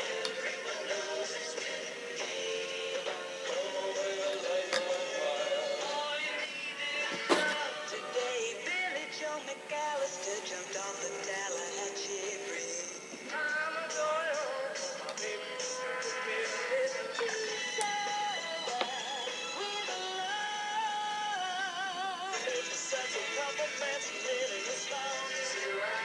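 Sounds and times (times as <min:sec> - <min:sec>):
pop songs with singing: 0:00.0 - 0:26.0.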